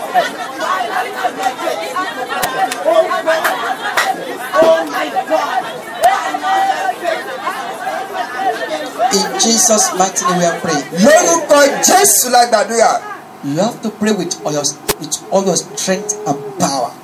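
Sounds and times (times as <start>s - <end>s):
many voices praying aloud: 0.0s - 17.0s.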